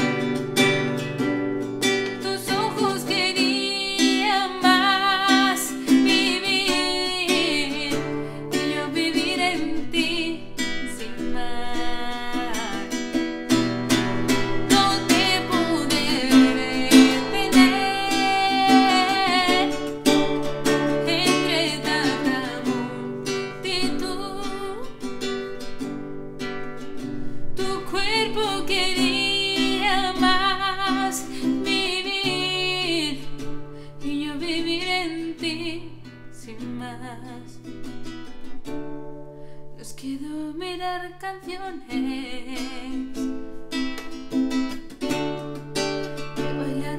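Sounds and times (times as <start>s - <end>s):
classical guitar strummed: 0.0s - 46.9s
woman singing a slow ballad: 2.1s - 25.1s, 27.6s - 37.7s, 39.6s - 43.4s, 46.4s - 46.9s.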